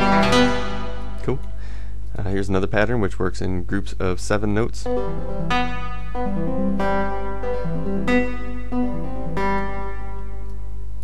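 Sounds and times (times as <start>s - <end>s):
synthesizer notes ringing out: 0.0s - 1.6s, 4.8s - 10.8s
steady low hum: 0.0s - 11.0s.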